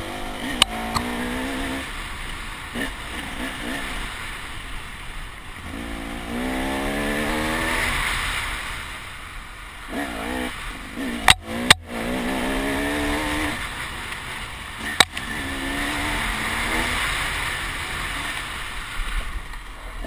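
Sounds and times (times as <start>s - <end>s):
dirt bike engine revving: 0.0s - 4.4s, 5.6s - 8.8s, 9.8s - 19.0s.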